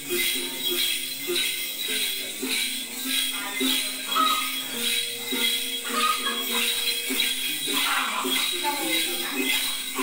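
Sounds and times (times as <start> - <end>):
small jingle bells shaken: 0.0 - 10.0.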